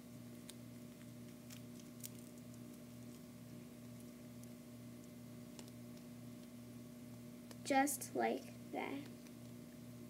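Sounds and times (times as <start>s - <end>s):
steady low hum: 0.0s - 10.0s
tape clicks and rustles: 0.4s - 7.7s.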